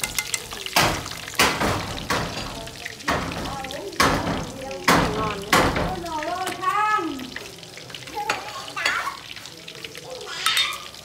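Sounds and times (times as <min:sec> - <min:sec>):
utensils knocking against pan: 0:00.0 - 0:06.6
fish frying in oil: 0:00.0 - 0:11.0.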